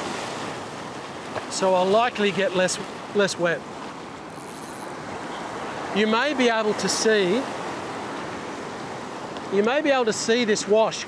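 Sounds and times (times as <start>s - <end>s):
ocean wash surging over rocks: 0.0s - 11.0s.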